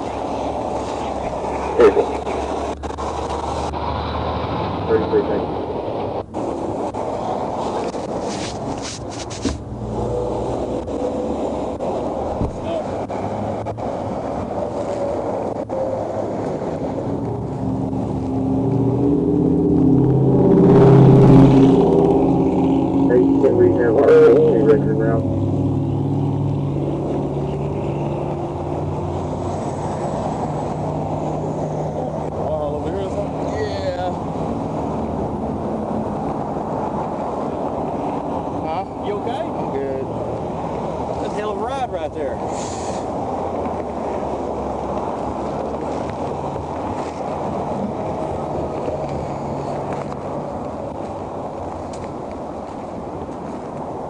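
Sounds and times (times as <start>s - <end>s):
roadside traffic noise: 0.0s - 54.0s
vehicle passing: 0.0s - 54.0s
muffled voices: 0.8s - 2.6s, 4.9s - 5.6s, 23.1s - 25.3s.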